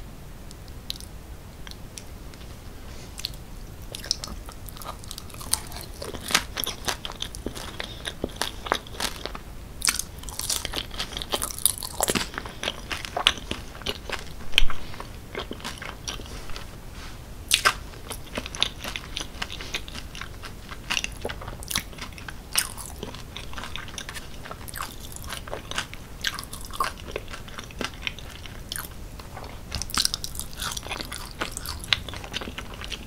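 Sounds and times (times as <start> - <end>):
person chewing with wet smacks: 0.5 - 2.5, 3.1 - 16.7, 17.5 - 33.0.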